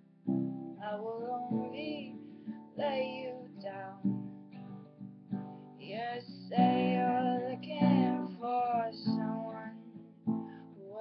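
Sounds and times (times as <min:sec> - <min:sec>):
acoustic guitar strumming: 0:00.0 - 0:11.0
woman singing: 0:00.8 - 0:04.2, 0:05.8 - 0:11.0.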